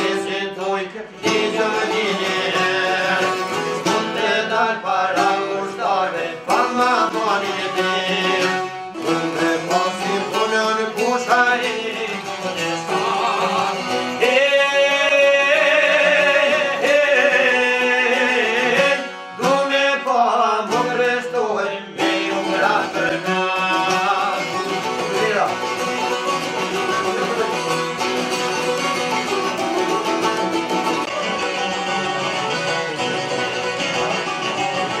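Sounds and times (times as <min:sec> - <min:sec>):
man singing: 0:00.0 - 0:25.8
plucked long-necked lutes: 0:00.0 - 0:35.0.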